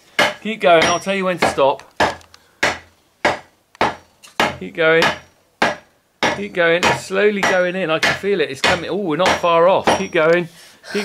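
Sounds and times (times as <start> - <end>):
mallet striking wooden handle: 0.2 - 10.1.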